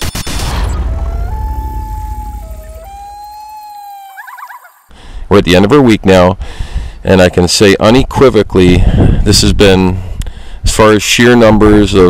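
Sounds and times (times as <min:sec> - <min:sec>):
low rumble of intro music: 0:00.0 - 0:03.4
loon wailing: 0:00.6 - 0:04.9.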